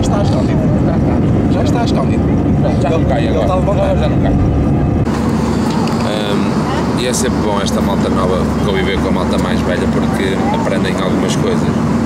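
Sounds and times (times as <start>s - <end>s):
airliner engines droning in cabin: 0.0s - 12.0s
low hum: 0.0s - 12.0s
voices talking: 0.0s - 12.0s.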